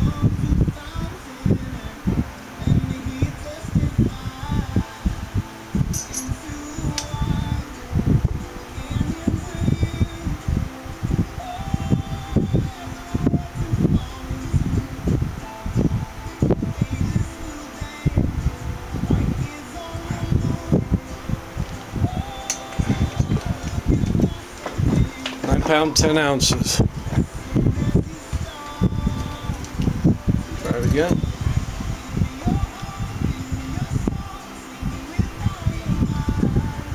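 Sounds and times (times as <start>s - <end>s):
wind buffeting microphone: 0.0s - 36.9s.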